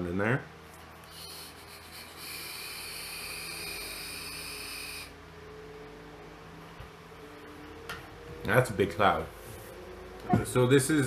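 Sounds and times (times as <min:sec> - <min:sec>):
airy hiss of vape draw: 0:01.0 - 0:05.1.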